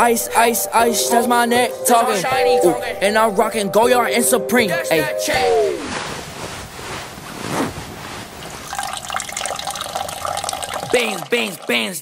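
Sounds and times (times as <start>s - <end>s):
urine stream splashing in toilet: 8.6s - 12.0s.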